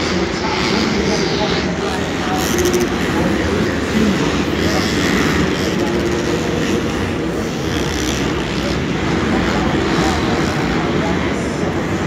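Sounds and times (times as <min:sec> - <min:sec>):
dirt bike engines revving: 0:00.0 - 0:12.0.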